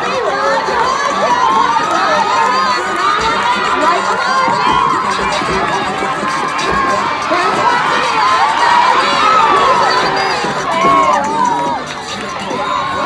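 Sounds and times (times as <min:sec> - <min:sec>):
crowd shouting and cheering: 0:00.0 - 0:13.0
loud shout: 0:00.0 - 0:13.0.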